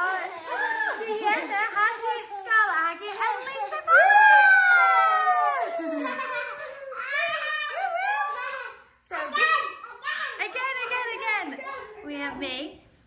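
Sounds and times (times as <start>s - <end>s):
girls giggling: 0.0s - 8.8s
girls screaming: 3.9s - 6.3s.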